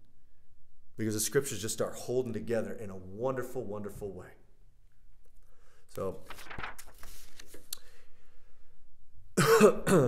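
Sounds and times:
man clearing his throat: 9.4s - 10.0s.

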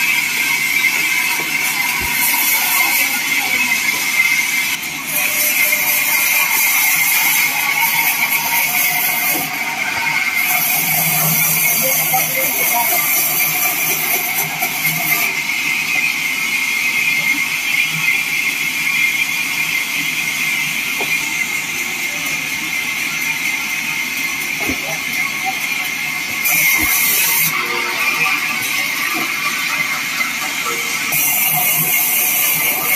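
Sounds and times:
bandsaw sawing through wood: 5.0s - 15.4s, 26.3s - 32.9s.

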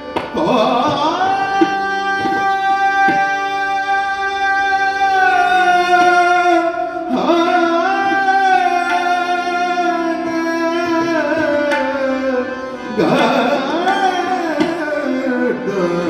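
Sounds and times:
tabla strokes: 0.0s - 3.8s, 4.8s - 10.0s, 10.7s - 16.0s
harmonium: 0.0s - 16.0s
tanpura drone: 0.0s - 16.0s.

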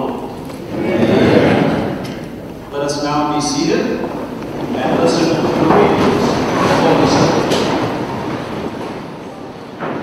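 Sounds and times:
people shuffling in wooden pews: 0.0s - 10.0s.

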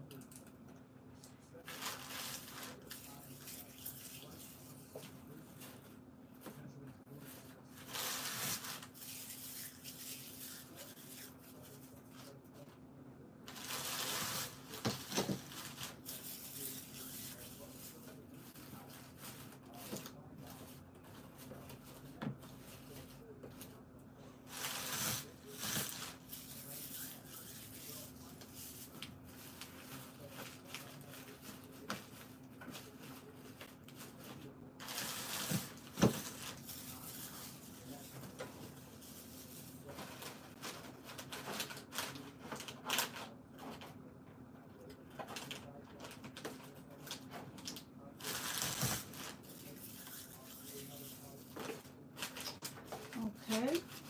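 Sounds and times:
hands rustling paper shred: 1.6s - 5.8s.

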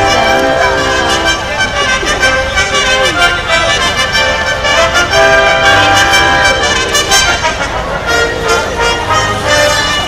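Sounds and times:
orchestral brass fanfare: 0.0s - 10.0s.

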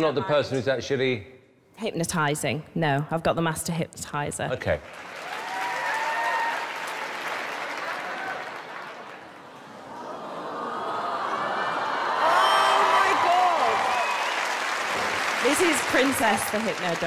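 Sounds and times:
audience applauding: 4.7s - 17.0s.

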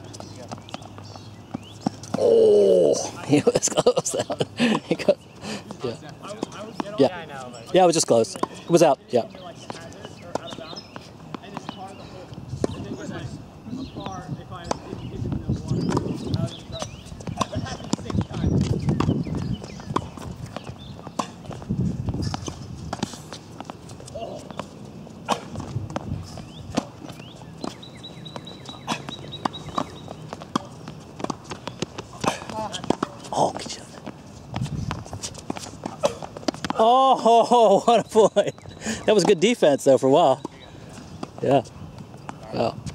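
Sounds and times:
racquets striking tennis ball: 0.0s - 3.0s, 6.1s - 12.9s, 14.0s - 42.9s
players' footsteps: 0.0s - 42.9s.

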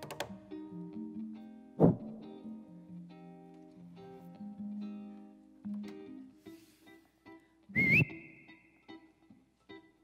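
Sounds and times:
plucked string notes: 0.0s - 6.5s
wavering high whistle: 7.8s - 8.6s.

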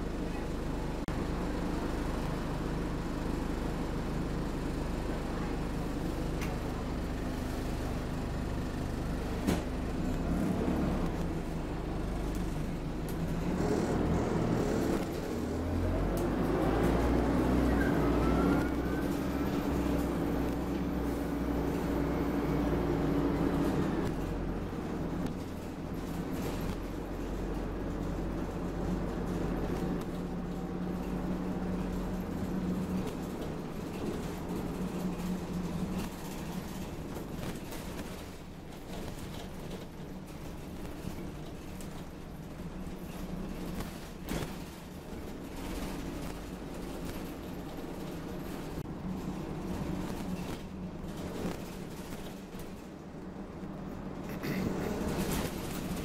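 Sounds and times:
bus engine droning: 0.0s - 56.0s.

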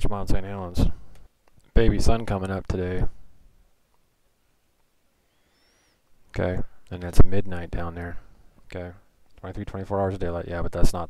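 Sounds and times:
faint high-pitched rising whistles: 5.3s - 6.0s.

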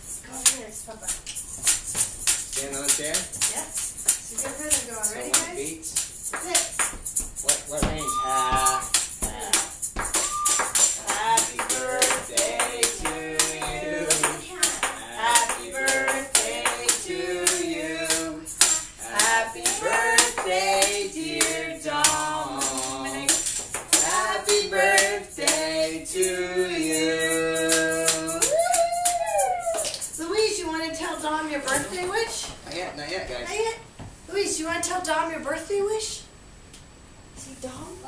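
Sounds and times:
rattling percussion beat: 0.0s - 30.3s
people singing together: 7.6s - 28.6s.

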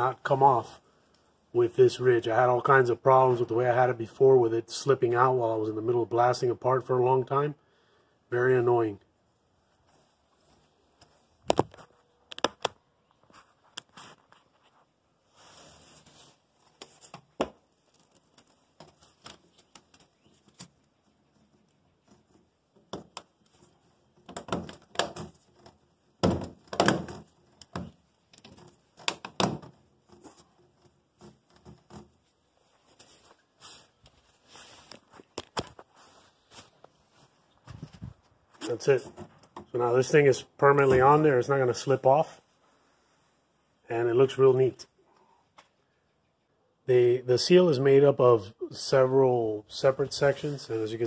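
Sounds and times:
plastic hose rubbing and crackling: 9.7s - 42.1s.

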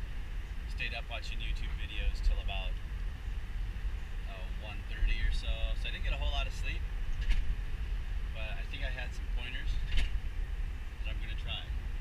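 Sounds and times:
vehicle road and engine rumble: 0.0s - 12.0s
man talking: 0.7s - 2.8s, 4.3s - 6.8s, 8.3s - 9.8s, 11.0s - 11.7s.

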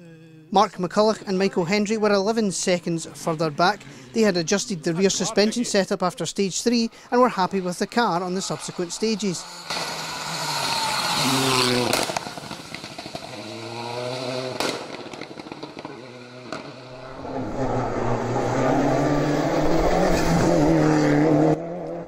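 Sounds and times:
rally car engines revving: 7.3s - 22.0s
sharp crack: 9.6s - 13.7s, 14.5s - 16.7s.

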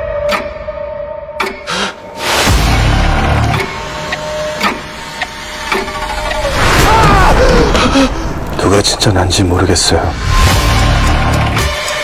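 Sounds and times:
sharp mechanical ticks: 11.0s - 12.0s.

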